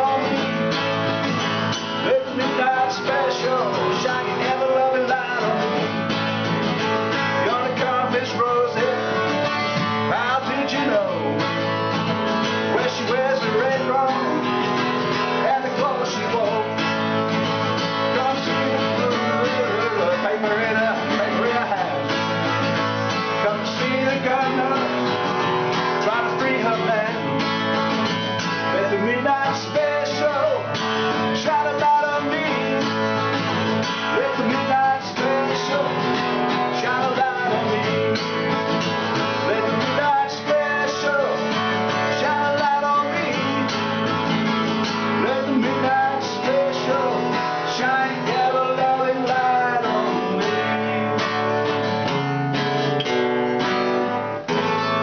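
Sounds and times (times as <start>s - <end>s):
acoustic guitar strumming and picking: 0.0s - 55.0s.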